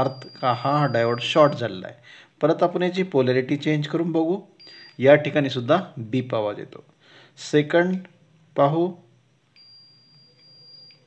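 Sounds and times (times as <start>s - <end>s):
multimeter high-pitched beep: 0.0s - 6.8s, 8.6s - 11.0s.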